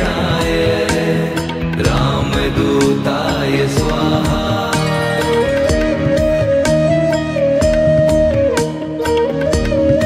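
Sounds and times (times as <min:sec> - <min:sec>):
steady percussion beat: 0:00.0 - 0:05.1
devotional music with held tones: 0:00.0 - 0:10.0.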